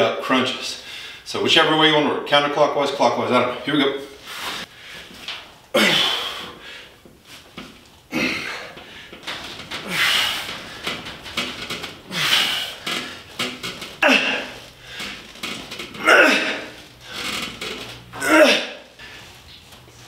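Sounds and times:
man exhaling hard: 0:05.8 - 0:07.0
man grunting: 0:08.1 - 0:08.8, 0:14.0 - 0:14.6, 0:16.0 - 0:16.8, 0:18.2 - 0:18.9.

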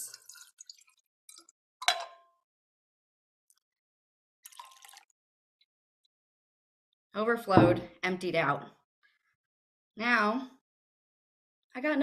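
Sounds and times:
water pouring into glass: 0:00.0 - 0:01.5, 0:04.4 - 0:05.1
water dripping: 0:00.0 - 0:01.6, 0:04.4 - 0:05.1
glass clinking on glass: 0:01.8 - 0:02.3.

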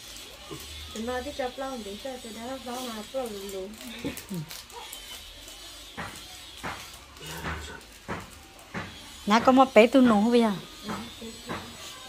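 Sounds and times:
plastic sachets tearing: 0:00.0 - 0:09.3.

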